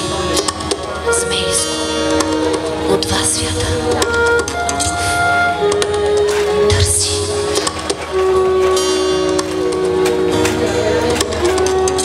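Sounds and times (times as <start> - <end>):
flute playing long notes: 0.0 - 12.0
low accompaniment: 0.0 - 12.0.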